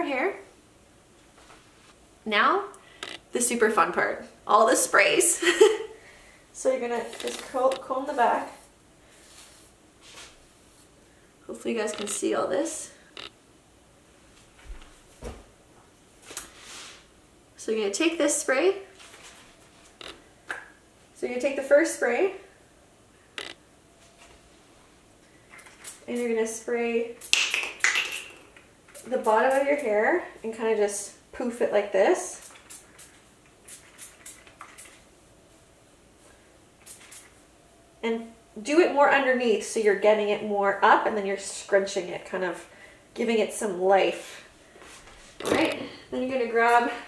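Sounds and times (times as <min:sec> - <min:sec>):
hairbrush strokes through hair: 0:07.0 - 0:10.9, 0:16.3 - 0:17.1.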